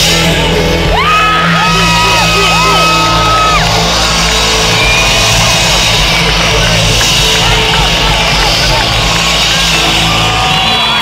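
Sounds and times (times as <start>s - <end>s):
live concert music with bass: 0.0s - 11.0s
crowd cheering and whooping: 0.5s - 11.0s
long high held shout: 0.9s - 11.0s.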